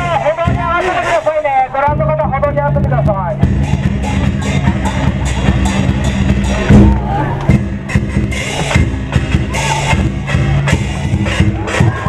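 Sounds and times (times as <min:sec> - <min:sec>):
large drum beating: 0:00.0 - 0:12.0.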